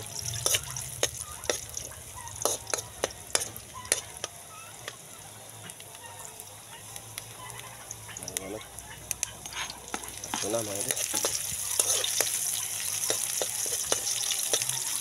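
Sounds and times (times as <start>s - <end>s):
metal spoon scraping a wok: 0.0s - 5.1s, 9.4s - 15.0s
garlic sizzling in oil: 0.0s - 15.0s.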